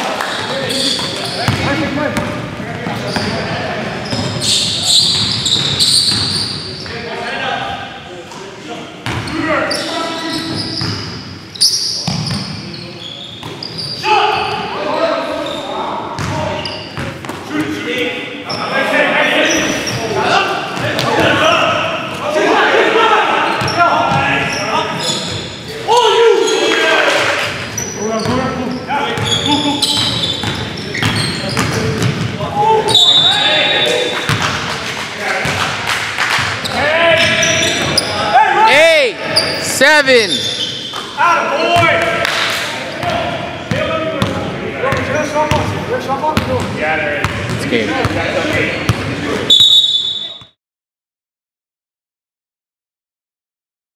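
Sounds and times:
players' voices and calls: 0.0s - 50.6s
basketball bouncing on wooden court: 0.4s - 3.3s, 12.0s - 12.6s, 16.2s - 16.4s, 29.2s - 32.4s, 43.0s - 45.8s, 46.4s - 48.2s.

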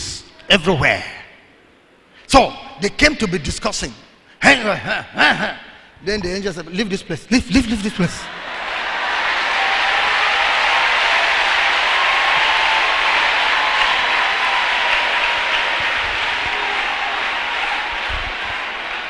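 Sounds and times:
congregation applauding: 8.3s - 19.0s.

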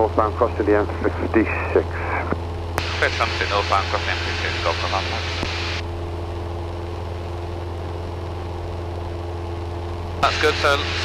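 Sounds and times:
propeller plane engine droning: 0.0s - 11.0s.

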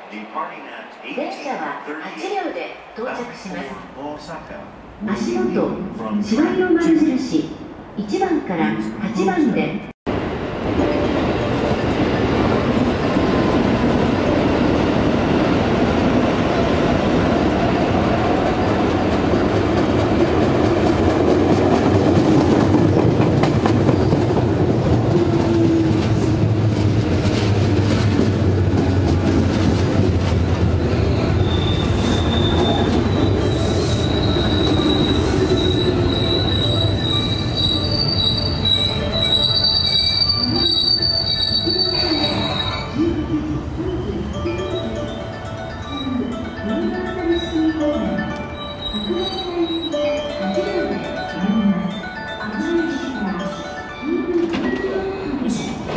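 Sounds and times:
train wheels rumbling on rails: 10.1s - 43.0s
high-pitched wheel squeal: 30.8s - 43.1s, 48.6s - 50.1s.

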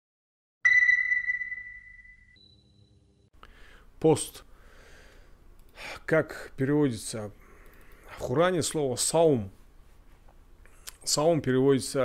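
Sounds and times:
high electronic ping: 0.6s - 3.1s.

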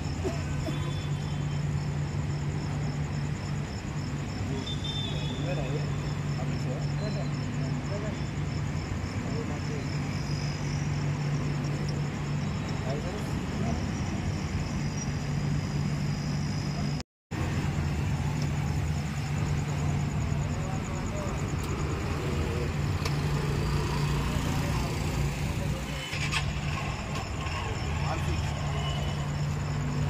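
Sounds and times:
street traffic: 0.0s - 30.0s
motorbikes running: 17.7s - 30.0s.

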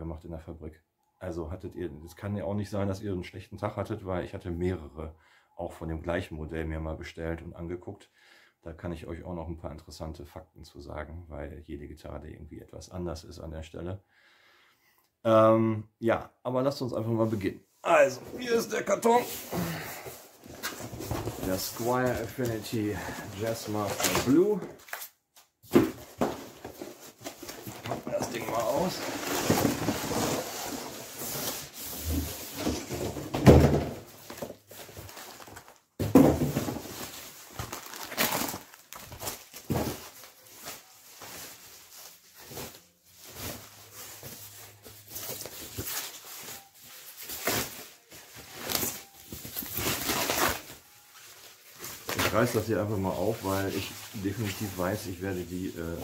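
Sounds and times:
plastic bag crinkling: 37.0s - 45.0s.

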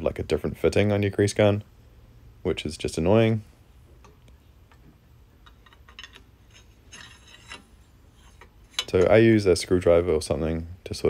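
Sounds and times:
bicycle parts clicking and tapping: 4.0s - 9.2s.

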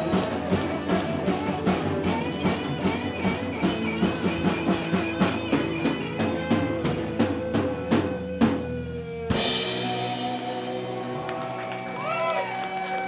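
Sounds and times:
steady drum beat: 0.0s - 11.9s
live rock band playing: 0.0s - 13.0s.

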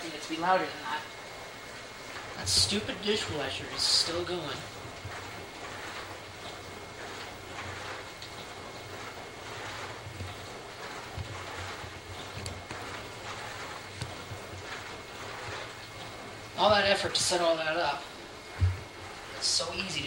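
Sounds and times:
low pump hum: 0.0s - 20.0s
water spraying in dishwasher: 0.0s - 20.0s.

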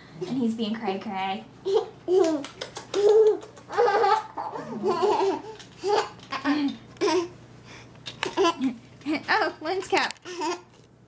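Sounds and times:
baby laughing: 1.6s - 7.3s, 8.2s - 8.8s.

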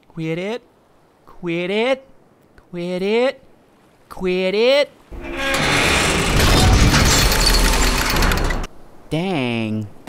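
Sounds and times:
cartoon crashing and breaking: 5.2s - 8.7s.

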